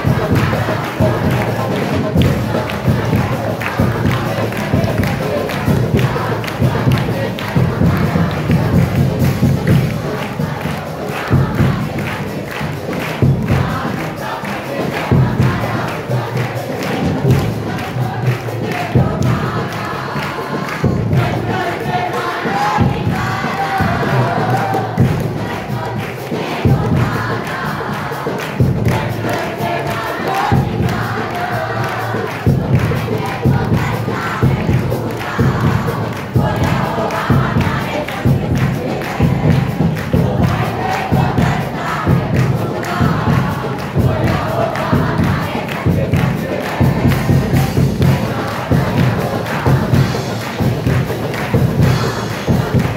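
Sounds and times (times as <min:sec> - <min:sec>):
congregation singing and calling out: 0:00.0 - 0:52.9
hand clapping: 0:00.0 - 0:52.9.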